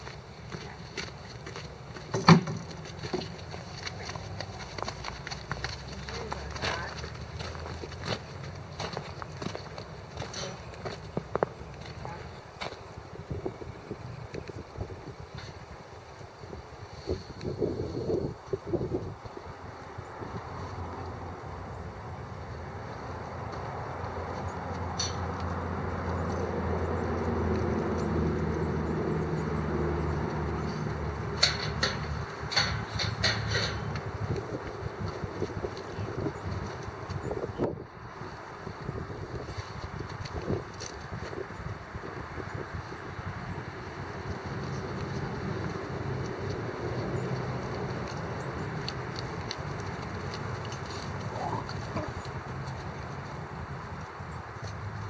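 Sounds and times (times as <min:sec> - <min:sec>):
distant vehicle engine drone: 0:00.0 - 0:55.0.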